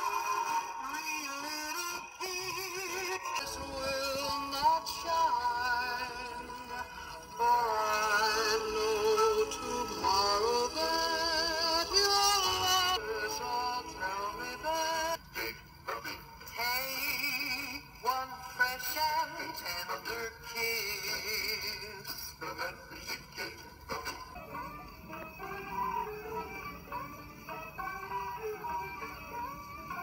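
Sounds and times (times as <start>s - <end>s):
song on phonograph record: 0.0s - 30.0s.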